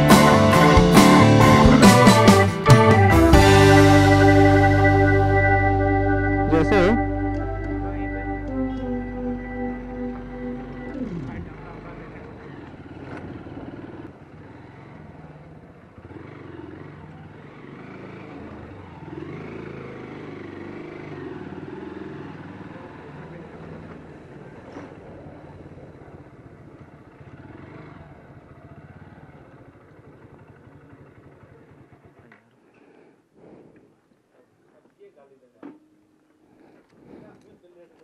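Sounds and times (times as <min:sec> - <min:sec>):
small motorcycle engine: 0:00.0 - 0:33.6
faint voices: 0:06.4 - 0:12.9.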